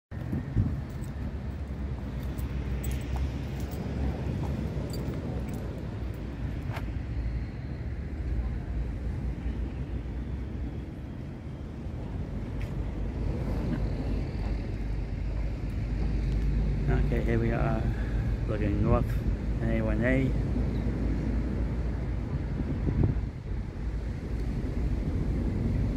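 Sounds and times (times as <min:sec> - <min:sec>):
wind buffeting microphone: 0:00.1 - 0:25.9.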